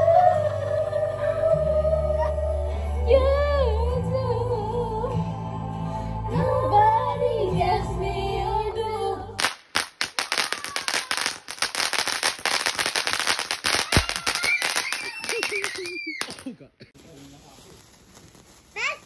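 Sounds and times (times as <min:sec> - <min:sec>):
music with singing: 0:00.0 - 0:09.4
firework crackling with fast pops: 0:09.4 - 0:19.0.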